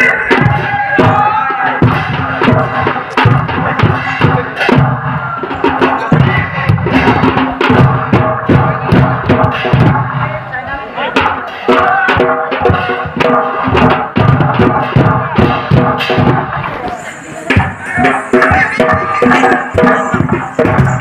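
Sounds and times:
folk drums beating: 0:00.0 - 0:21.0.

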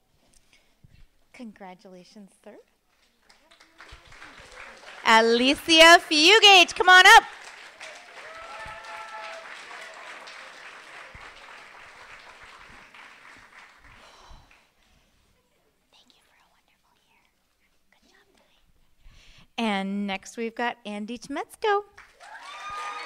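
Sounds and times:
audience applause: 0:03.3 - 0:05.7, 0:06.4 - 0:14.2, 0:22.0 - 0:23.0.

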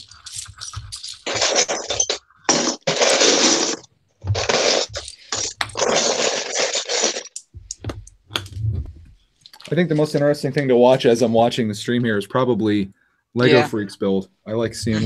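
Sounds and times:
plastic bricks clattering and scraping: 0:00.0 - 0:07.8.

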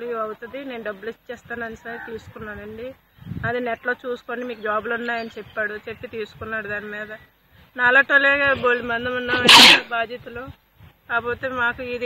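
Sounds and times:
woman speaking: 0:00.0 - 0:07.2, 0:07.8 - 0:12.0
loud hissing burst: 0:09.4 - 0:09.9.

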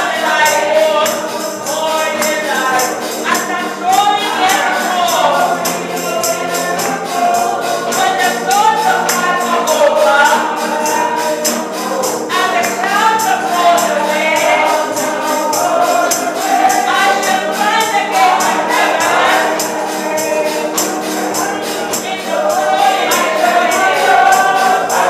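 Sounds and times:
congregation singing gospel song: 0:00.0 - 0:25.0
tambourine beat: 0:00.0 - 0:25.0.

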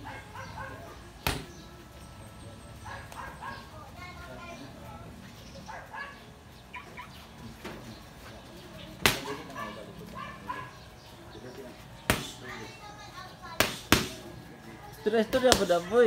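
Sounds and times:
faint background voices: 0:00.0 - 0:16.0
boxing glove smacking punch mitt: 0:01.2 - 0:01.6, 0:09.0 - 0:09.3, 0:12.1 - 0:12.4, 0:13.6 - 0:14.2.

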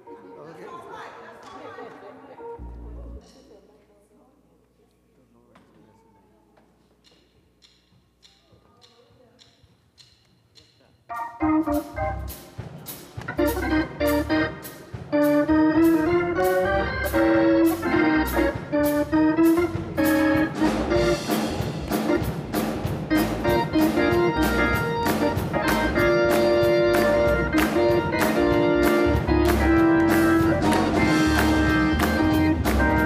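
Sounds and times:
organ chords: 0:02.4 - 0:03.2, 0:11.1 - 0:33.0
bass: 0:02.6 - 0:03.2, 0:11.1 - 0:33.0
drums: 0:07.1 - 0:33.0.

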